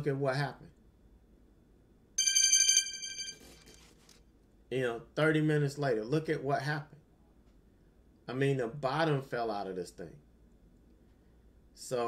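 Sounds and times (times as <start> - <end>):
high trilling ring: 2.2 - 3.7.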